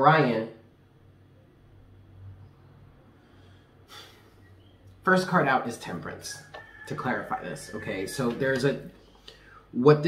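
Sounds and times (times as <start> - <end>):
person breathing: 3.1 - 4.6, 9.0 - 9.8.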